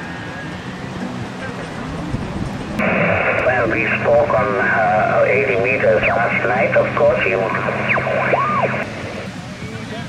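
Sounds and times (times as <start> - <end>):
faint wavering radio speech: 2.8 - 9.3
radio hiss: 2.8 - 9.4
radio heterodyne whistles: 4.7 - 9.2.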